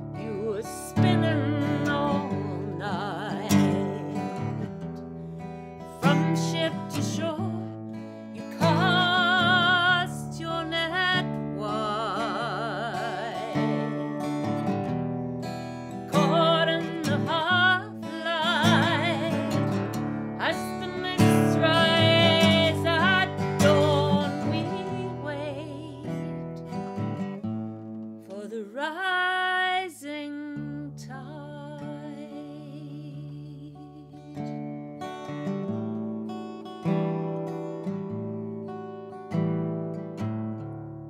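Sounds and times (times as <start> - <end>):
acoustic guitar chords: 0.0 - 28.4, 29.0 - 41.0
woman singing folk song: 0.0 - 40.7.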